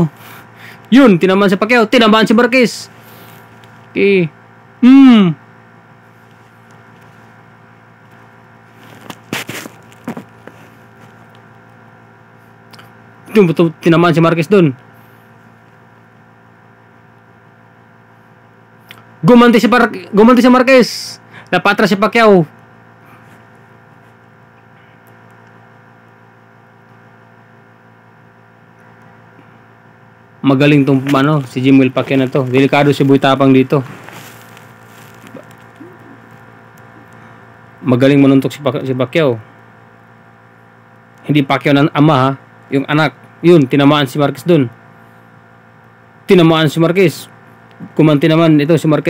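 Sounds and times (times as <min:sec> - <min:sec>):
steady electrical hum: 0:00.0 - 0:49.0.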